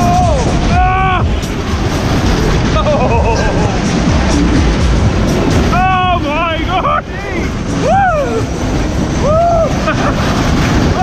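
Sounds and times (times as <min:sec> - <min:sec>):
riders whooping: 0:00.0 - 0:04.3, 0:05.6 - 0:11.0
fairground ride rumble: 0:00.0 - 0:11.0
wind on microphone: 0:00.0 - 0:11.0.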